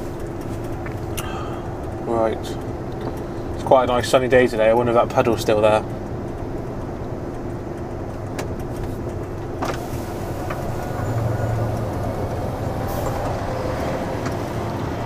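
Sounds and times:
lorry diesel engine running: 0.0s - 15.0s.

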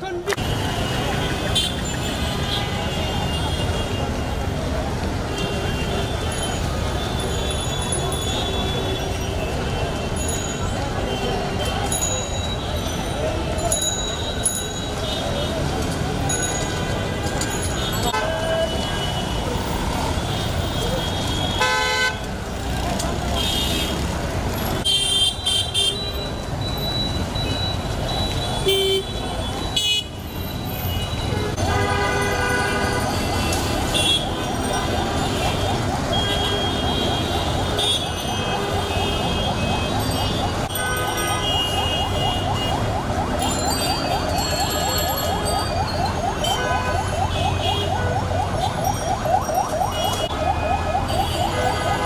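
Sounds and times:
crowd talking: 0.0s - 21.6s
road traffic: 0.0s - 52.0s
vehicle horns honking: 16.8s - 22.2s, 28.2s - 30.2s, 30.8s - 34.4s.

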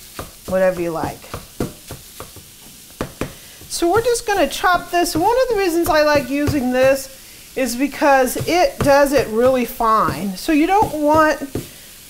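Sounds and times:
meat chopper scraping in frying pan: 0.0s - 12.0s.

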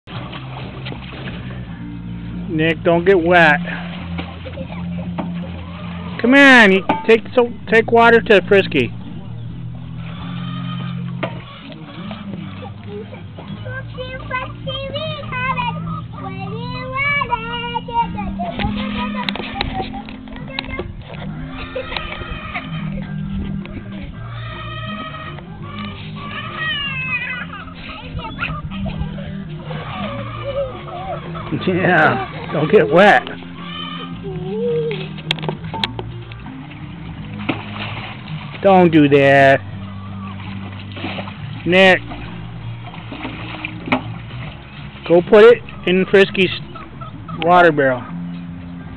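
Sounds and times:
young children babbling and squealing: 12.6s - 23.3s, 24.3s - 35.2s
young child's wordless voice: 12.9s - 21.0s.

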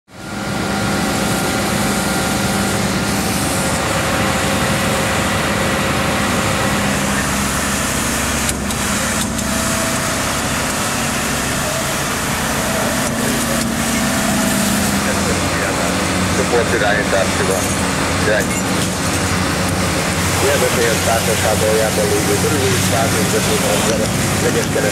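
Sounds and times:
diesel engine running: 0.1s - 24.9s.

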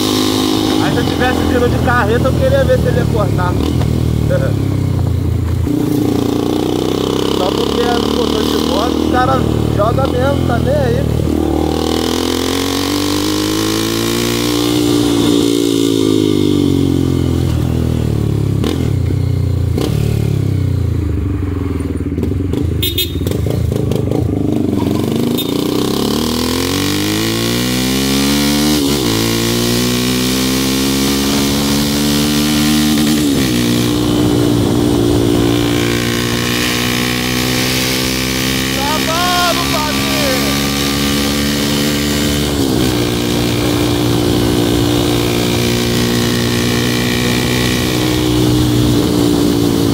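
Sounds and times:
motorcycle engine revving: 0.0s - 49.9s
wind noise: 32.9s - 36.8s, 41.5s - 49.9s.

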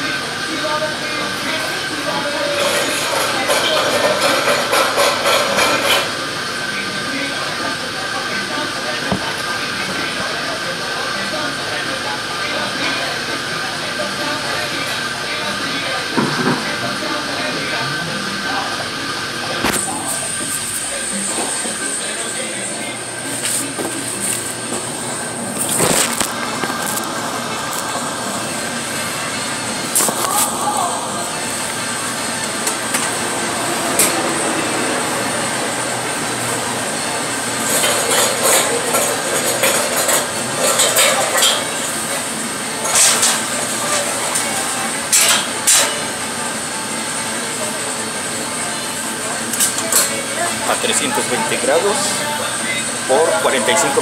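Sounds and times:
oven and exhaust hood whooshing: 18.7s - 48.4s.

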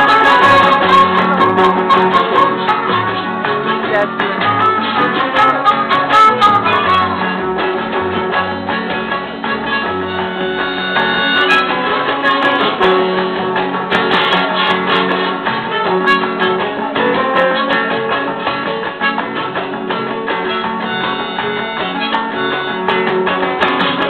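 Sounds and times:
acoustic guitar strumming: 0.0s - 24.0s
low bass notes: 0.0s - 24.0s.

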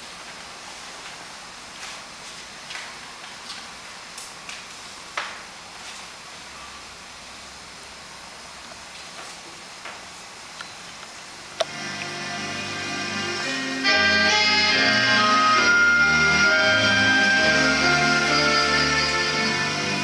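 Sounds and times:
music: 11.7s - 20.0s.

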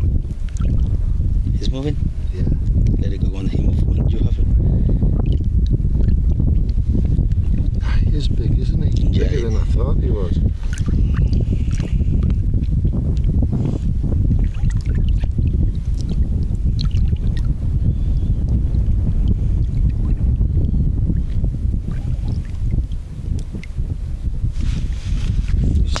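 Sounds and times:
wind buffeting microphone: 0.0s - 26.0s
small water splashes: 0.4s - 0.9s, 10.6s - 11.9s, 14.4s - 17.5s.

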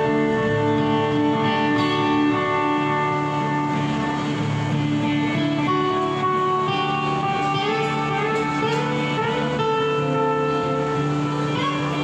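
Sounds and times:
electric lead guitar sustained notes: 0.0s - 12.0s
live rock band playing: 0.0s - 12.0s
rhythm guitar: 0.0s - 12.0s.

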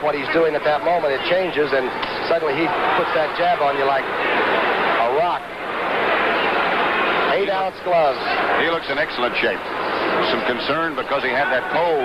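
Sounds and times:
crowd din: 0.0s - 12.0s.

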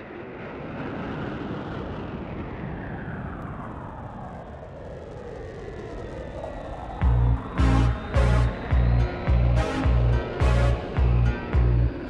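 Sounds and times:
slowed reverb-heavy synth-pop music: 7.0s - 12.0s.

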